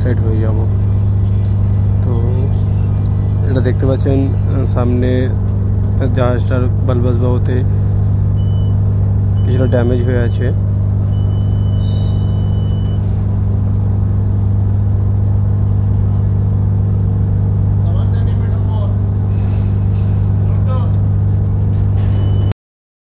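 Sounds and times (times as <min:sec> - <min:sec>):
deep hum of ship engine machinery: 0:00.0 - 0:22.6.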